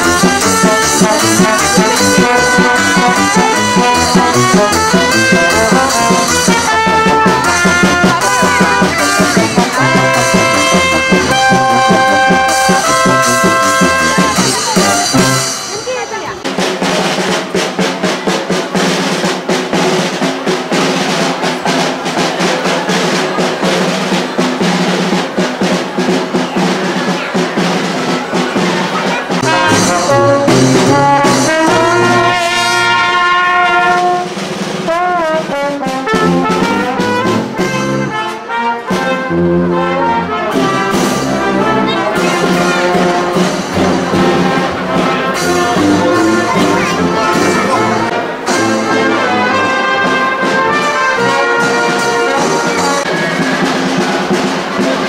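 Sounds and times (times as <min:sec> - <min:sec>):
drum beat: 0:00.0 - 0:55.0
marching brass band playing: 0:00.0 - 0:55.0.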